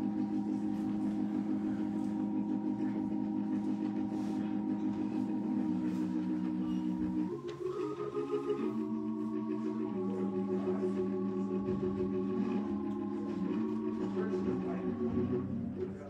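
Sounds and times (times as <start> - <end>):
organ holding sustained chords: 0.0 - 16.0.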